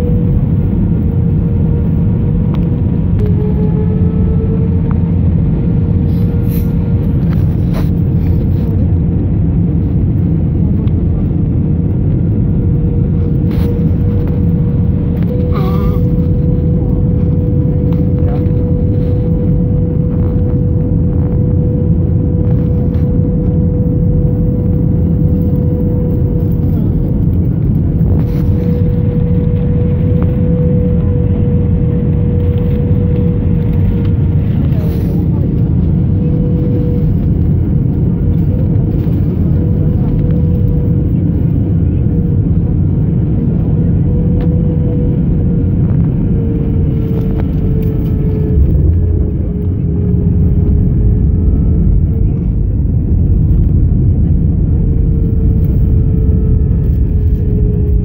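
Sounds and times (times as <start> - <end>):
jet engines rumbling: 0.0 - 58.0
steady cabin hum: 0.0 - 58.0.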